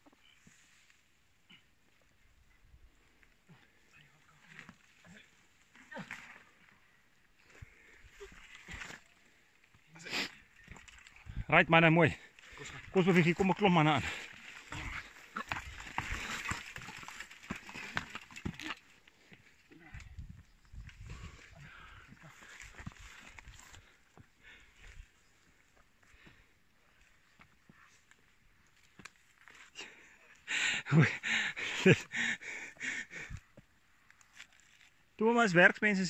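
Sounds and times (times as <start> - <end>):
branches rustling and scraping: 7.7 - 9.7, 33.9 - 35.2.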